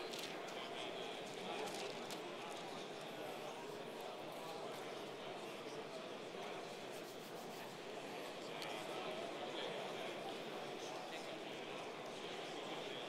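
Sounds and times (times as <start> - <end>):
men talking in reverberant hall: 0.0 - 13.0.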